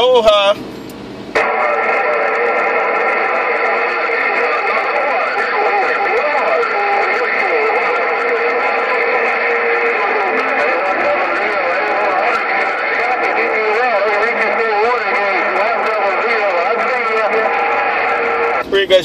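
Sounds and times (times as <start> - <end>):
whistling radio tones: 1.4 - 18.7
garbled radio voices: 1.4 - 19.0
radio static rush: 1.4 - 19.0.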